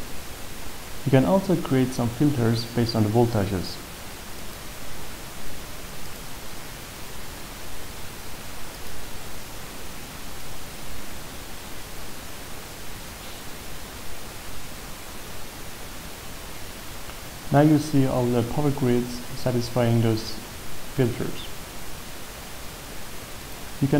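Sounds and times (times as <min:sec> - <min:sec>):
steady background hiss: 0:00.0 - 0:23.9.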